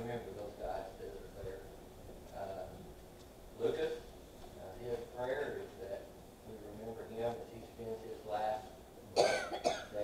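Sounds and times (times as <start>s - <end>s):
man speaking: 0.0s - 2.9s, 3.6s - 10.0s
person coughing: 9.2s - 10.0s.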